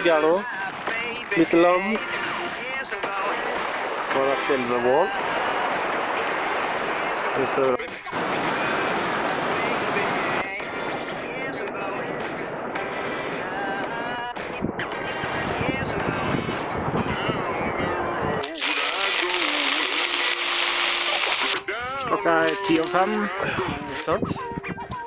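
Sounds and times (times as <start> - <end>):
steady rushing noise: 0.0 - 21.6
rain falling on a tarp: 18.4 - 21.6.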